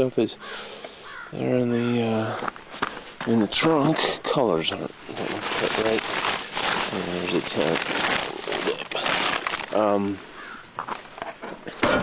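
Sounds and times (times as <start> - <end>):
rustling tent bag: 4.8 - 11.2.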